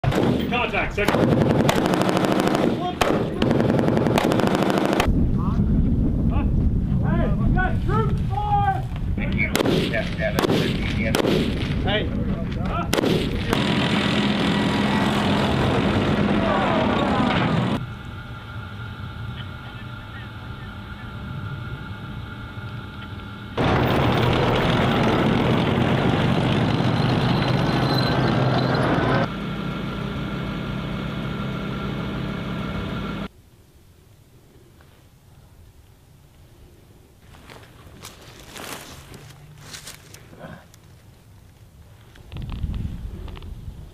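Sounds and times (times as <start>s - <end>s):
rifle gunfire: 1.0s - 5.1s, 9.5s - 11.6s, 12.9s - 14.5s
loud dense noise: 6.5s - 33.3s
vehicle engine running: 13.2s - 33.3s.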